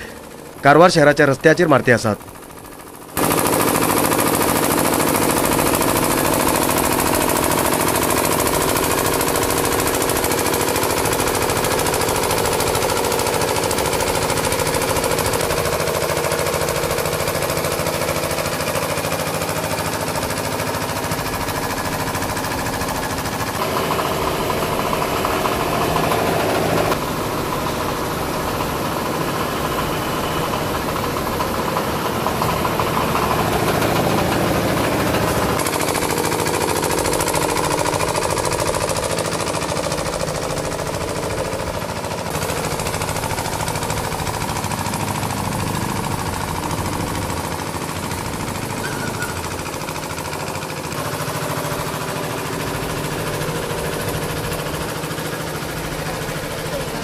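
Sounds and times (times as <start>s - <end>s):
power sprayer pump engine pulsing: 0.0s - 57.0s.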